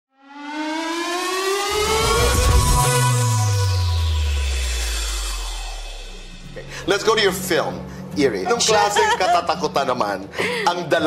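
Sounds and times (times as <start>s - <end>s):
rising synth sweep: 0.1s - 7.2s
deep electronic bass: 1.7s - 7.4s.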